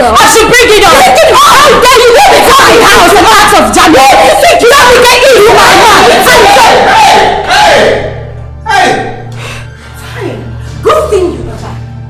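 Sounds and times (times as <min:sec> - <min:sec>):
women screaming and yelling: 0:00.0 - 0:07.3
man shouting: 0:00.0 - 0:08.0, 0:08.7 - 0:09.2.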